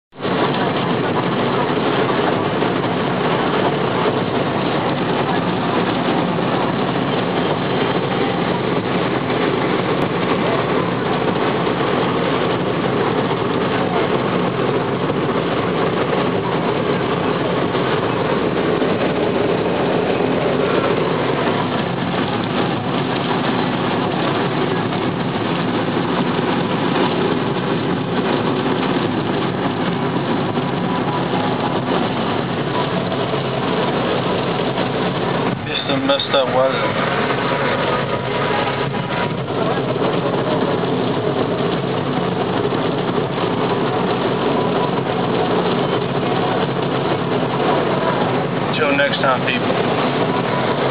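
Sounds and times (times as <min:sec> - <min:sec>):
car engine: 0:00.2 - 0:50.9
tyres on wet pavement: 0:00.2 - 0:50.9.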